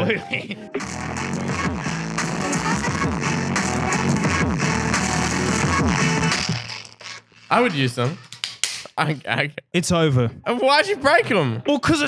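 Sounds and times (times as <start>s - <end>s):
electronic music through headphones: 0.0s - 8.3s.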